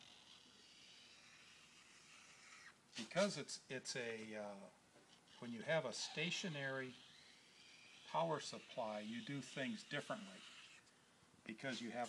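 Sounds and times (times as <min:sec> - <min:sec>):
marker drawing on paper: 0:00.0 - 0:03.4, 0:05.1 - 0:10.8.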